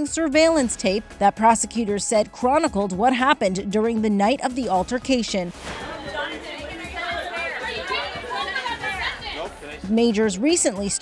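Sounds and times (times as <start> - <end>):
background music: 0.0 - 11.0
chatter of several voices: 5.8 - 9.8.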